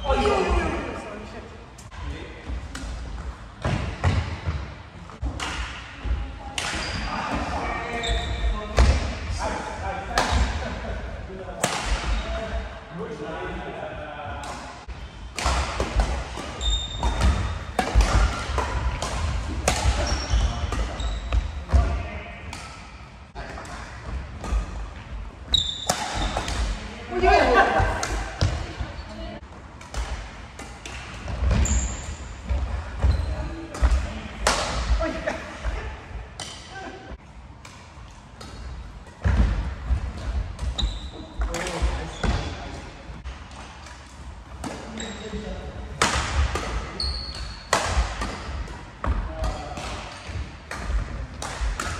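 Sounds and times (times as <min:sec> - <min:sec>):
shoe squeaks: 0:07.9 - 0:08.6, 0:16.6 - 0:17.3, 0:20.0 - 0:21.4, 0:25.5 - 0:26.4, 0:31.5 - 0:32.2, 0:40.8 - 0:41.3, 0:44.9 - 0:45.4, 0:46.9 - 0:47.7.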